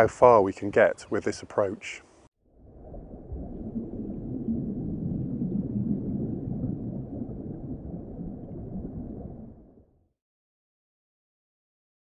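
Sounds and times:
muffled underwater rumble: 2.5s - 10.1s.

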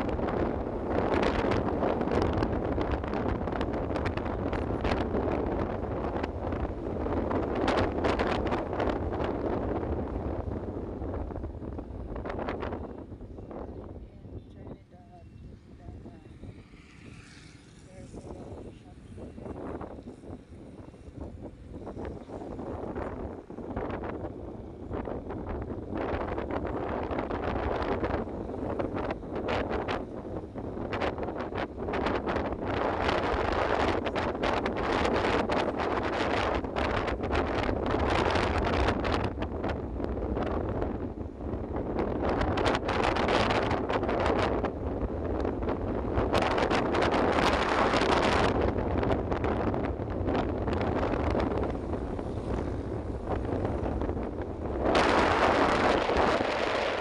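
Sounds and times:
wind buffeting microphone: 0.0s - 57.0s
vehicle rumbling on wet road: 16.4s - 19.1s.

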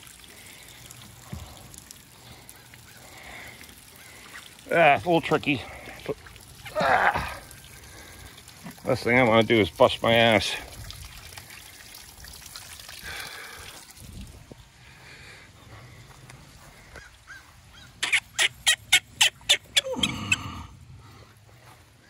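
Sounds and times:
hose spigot squeaking: 18.0s - 20.4s.

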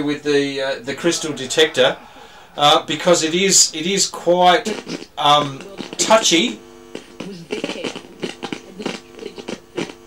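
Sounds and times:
crackling radio speaker: 0.0s - 10.0s.

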